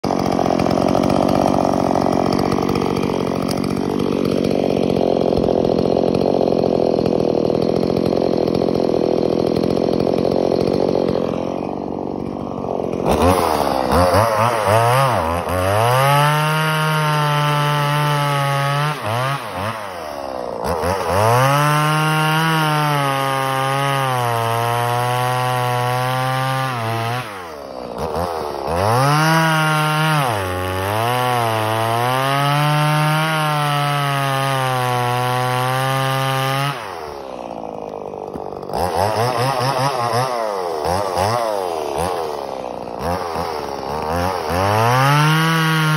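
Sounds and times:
chainsaw cutting log: 0.0 - 45.9.

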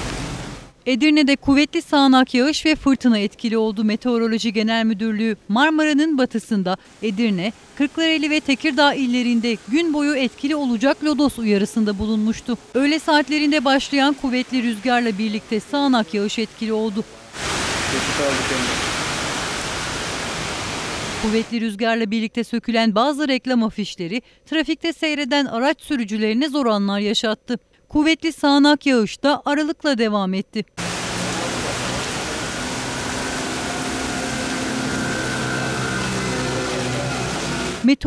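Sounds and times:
heavy rain pouring on street: 0.0 - 0.8, 6.8 - 21.5, 30.8 - 37.8
wind: 0.0 - 0.9, 1.8 - 21.6, 30.8 - 37.9
wind gusting in trees: 17.1 - 21.5, 30.8 - 37.8
low vehicle engine hum: 30.8 - 37.8.

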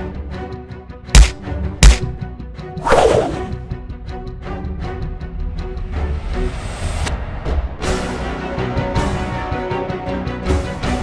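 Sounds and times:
background music: 0.0 - 11.0
whoosh sound effect: 2.8 - 3.6.

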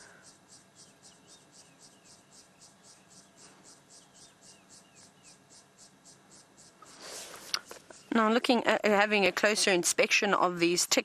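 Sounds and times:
faint insect chirping: 0.0 - 11.0.

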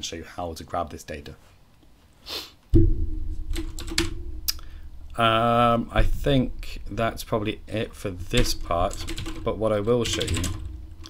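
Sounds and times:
steady low hum: 2.8 - 11.0
typing on computer keyboard: 3.5 - 4.1, 8.3 - 10.7.

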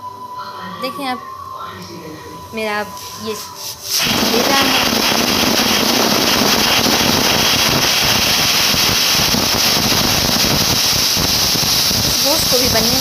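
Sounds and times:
pressure cooker steam whistle hiss: 3.9 - 13.0.

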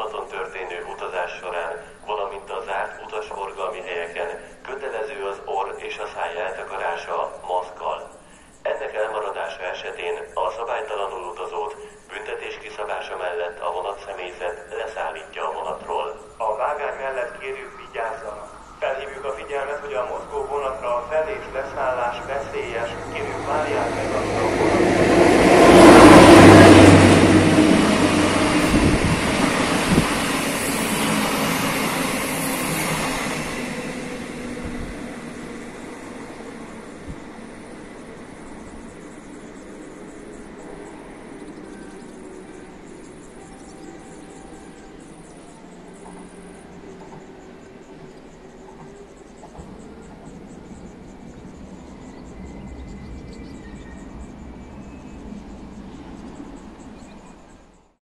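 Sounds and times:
train wheels rolling on rail: 0.0 - 57.9
electric locomotive hum: 0.0 - 58.0.

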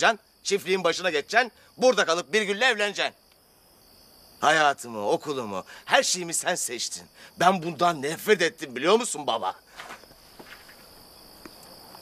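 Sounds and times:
crickets trilling: 0.0 - 12.0
faint ticks: 9.8 - 12.0.

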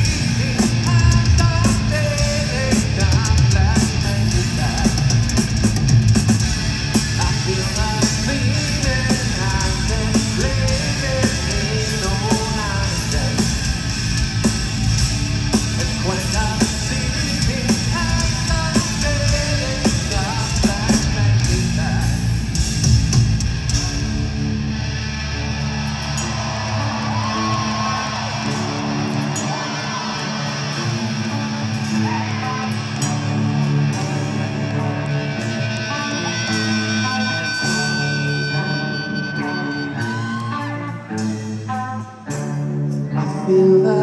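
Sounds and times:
electric guitar: 0.0 - 44.0
heavy rock band playing live: 0.0 - 44.0.

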